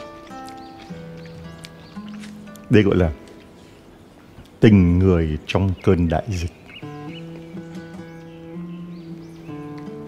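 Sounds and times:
acoustic guitar plucked notes: 0:06.8 - 0:10.0.

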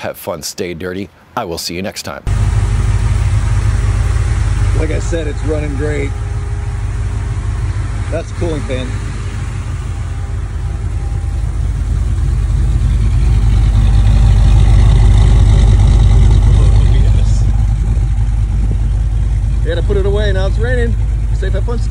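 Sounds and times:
truck engine idling: 0:02.2 - 0:21.9
cooling fan running: 0:02.3 - 0:21.9.

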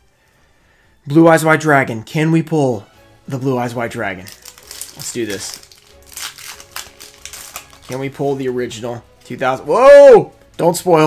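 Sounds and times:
foil wrapper crinkling and tearing: 0:04.2 - 0:08.6.

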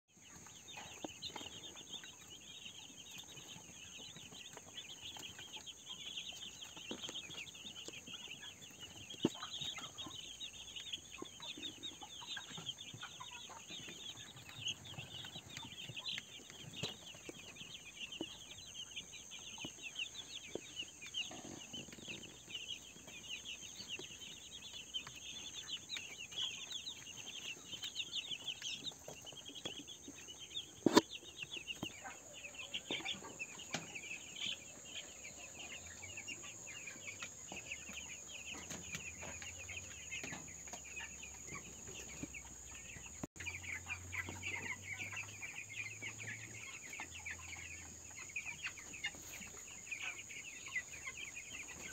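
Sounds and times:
chicks peeping: 0:00.1 - 0:51.9.

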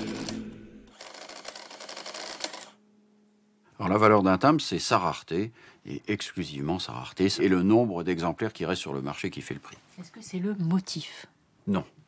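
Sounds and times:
background music: 0:00.0 - 0:01.0
print mechanism chattering: 0:00.0 - 0:02.7.

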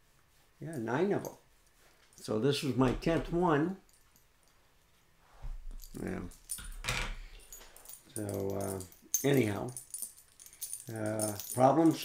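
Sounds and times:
dog collar tags jingling: 0:05.6 - 0:12.0.

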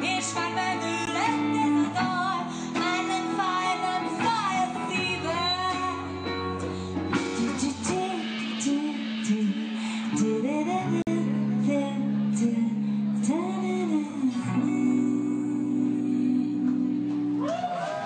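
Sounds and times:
woman singing: 0:00.0 - 0:17.6
bass guitar: 0:00.0 - 0:18.0
drums: 0:00.0 - 0:18.0
electric guitar: 0:00.0 - 0:18.0.

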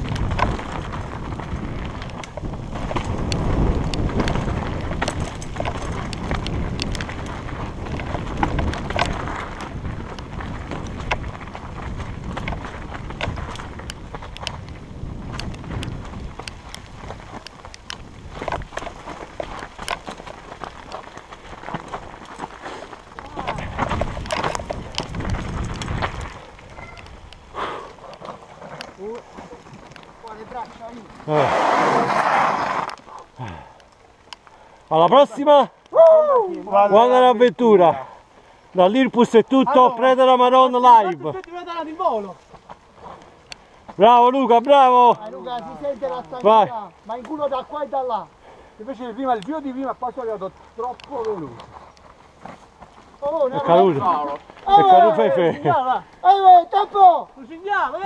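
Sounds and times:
bike rattling and knocking: 0:00.0 - 0:31.4
tyres on loose gravel: 0:00.0 - 0:58.0.

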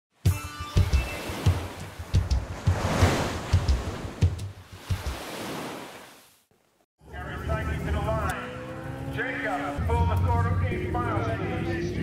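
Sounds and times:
bass drum beat: 0:00.8 - 0:05.2
rush of surf-like noise: 0:02.6 - 0:03.6.

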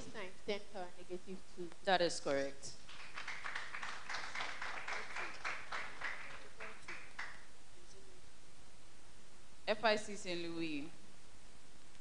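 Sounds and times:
audience clapping: 0:02.8 - 0:07.5.

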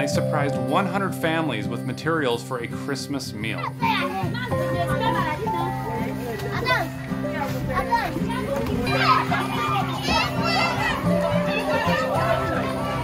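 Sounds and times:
background music with held notes: 0:00.0 - 0:13.0
children shouting and chattering: 0:03.4 - 0:13.0.

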